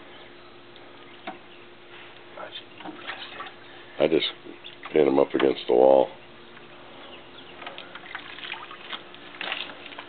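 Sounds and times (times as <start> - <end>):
low steady hum: 0.0 - 10.0
hand rummaging in plastic bucket: 8.8 - 10.0.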